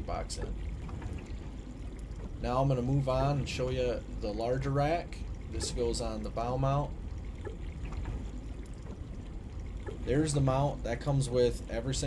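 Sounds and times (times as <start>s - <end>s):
water around a boat: 0.0s - 12.0s.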